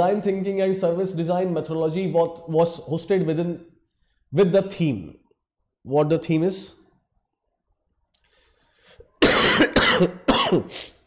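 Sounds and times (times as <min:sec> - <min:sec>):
man coughing: 0:09.2 - 0:11.0.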